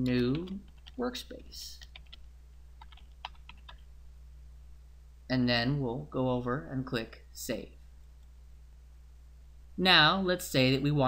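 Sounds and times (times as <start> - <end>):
computer keyboard typing: 0.0 - 1.0, 1.7 - 3.9.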